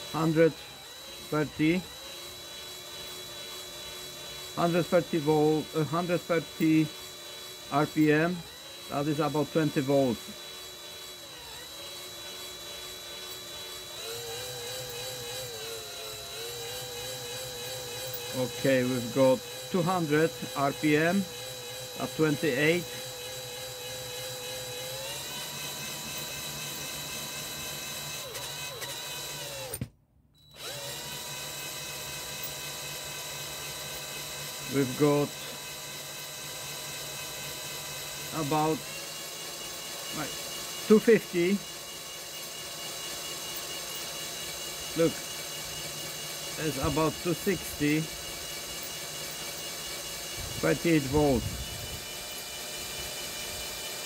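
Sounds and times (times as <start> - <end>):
cordless drill whining: 0.0 - 54.0.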